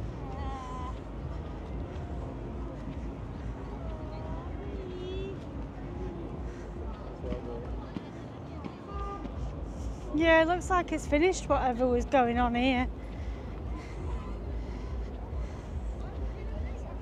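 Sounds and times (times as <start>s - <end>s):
passersby talking: 0.0s - 17.0s
steady low rumble: 0.0s - 17.0s.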